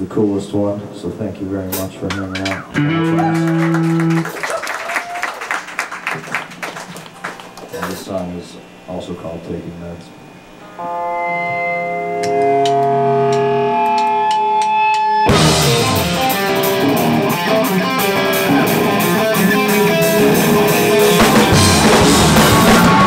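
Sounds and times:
electric guitar picked notes: 0:02.5 - 0:04.2, 0:10.2 - 0:23.0
full band rock music: 0:10.8 - 0:23.0.

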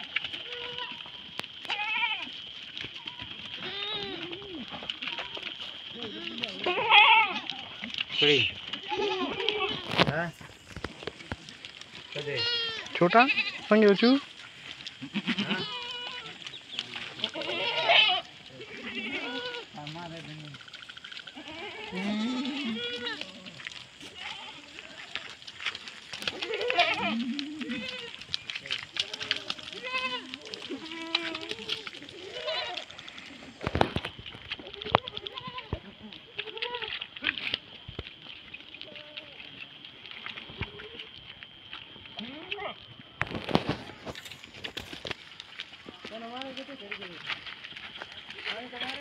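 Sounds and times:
goats bleating: 0:00.3 - 0:10.1, 0:11.7 - 0:20.3, 0:21.2 - 0:33.6, 0:34.6 - 0:37.4, 0:42.2 - 0:42.8.

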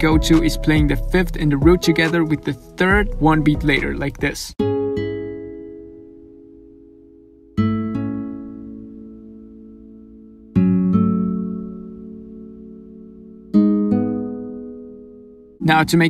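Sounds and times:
nylon-string guitar chords: 0:00.0 - 0:16.0.

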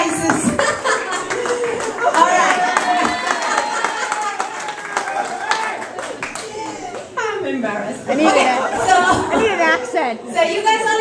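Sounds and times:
people laughing and chattering: 0:00.0 - 0:11.0.

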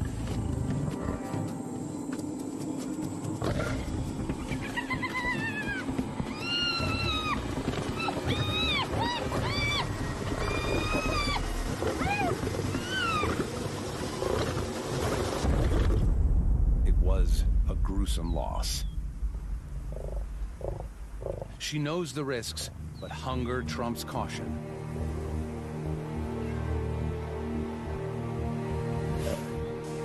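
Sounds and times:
lions growling: 0:03.4 - 0:05.7, 0:06.4 - 0:16.0, 0:19.9 - 0:21.6
hyena calls: 0:04.5 - 0:13.5.

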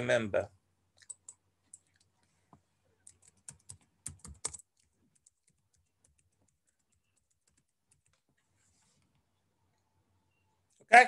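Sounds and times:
computer keyboard typing: 0:03.0 - 0:08.3.

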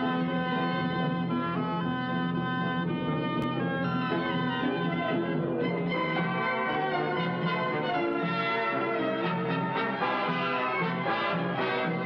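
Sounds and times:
orchestral brass chords: 0:05.7 - 0:12.0.

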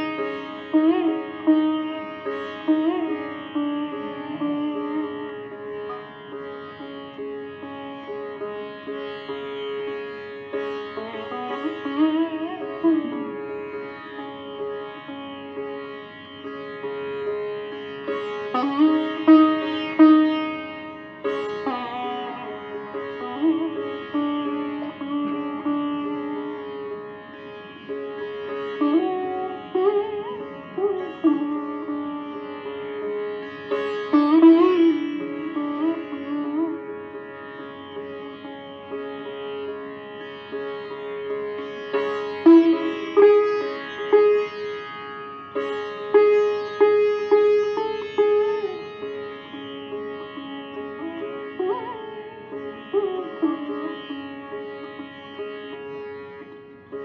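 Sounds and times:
sitar melody: 0:00.0 - 0:57.0.

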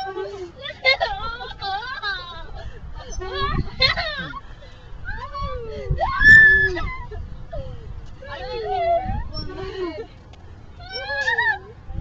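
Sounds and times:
wind rumble on microphone: 0:00.8 - 0:12.0
child squealing: 0:05.2 - 0:07.1, 0:10.8 - 0:11.7.

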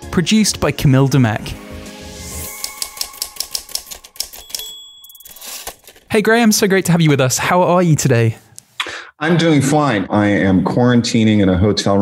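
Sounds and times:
background music: 0:00.0 - 0:07.4
typewriter carriage bell ding: 0:02.5 - 0:06.1
typewriter keys clacking: 0:02.5 - 0:06.1.

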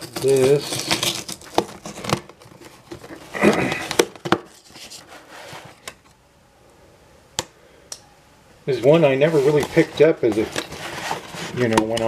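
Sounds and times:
cardboard box rustling: 0:00.0 - 0:05.9, 0:08.9 - 0:12.0.

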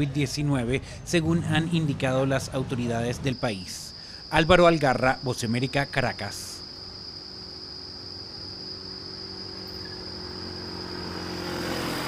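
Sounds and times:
traffic engine hum: 0:00.0 - 0:12.0
high-pitched insect drone: 0:02.5 - 0:12.0
motorcycle passing: 0:06.8 - 0:12.0.

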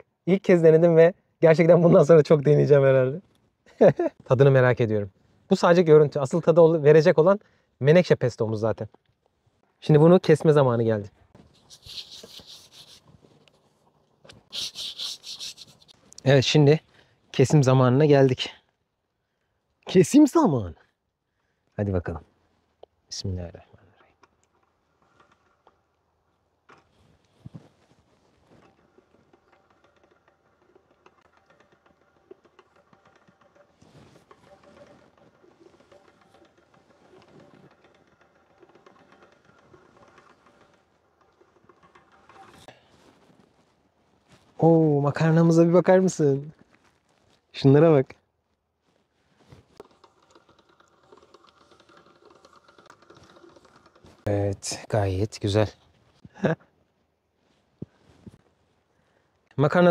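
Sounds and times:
hands rubbing pasta dough: 0:11.4 - 0:16.2
pasta machine gear clicks: 0:11.6 - 0:13.6, 0:14.3 - 0:16.3, 0:28.5 - 0:42.8, 0:49.5 - 0:55.4.

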